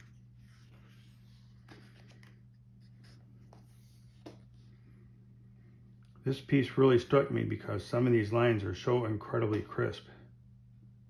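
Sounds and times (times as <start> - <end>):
hands on book pages: 0.0 - 4.8
steady low hum: 0.0 - 11.0.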